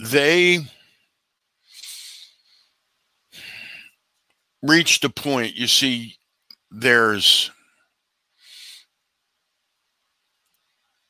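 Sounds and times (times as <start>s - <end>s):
person drawing a short breath: 1.7s - 4.0s.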